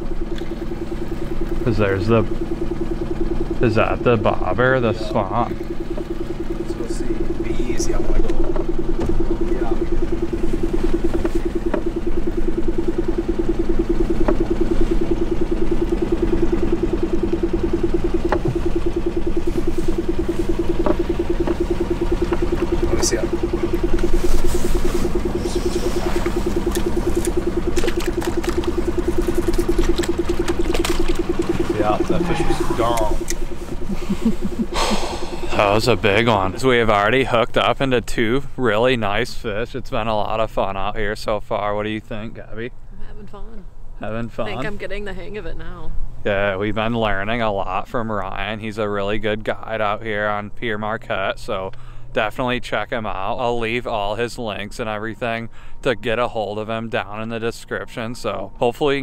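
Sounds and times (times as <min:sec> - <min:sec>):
boat motor running: 0:00.0 - 0:59.0.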